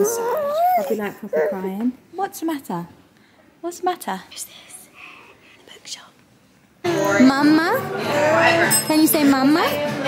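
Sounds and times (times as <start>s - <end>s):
person whispering: 4.3s - 5.0s, 5.6s - 6.2s
music playing in room: 6.8s - 10.0s.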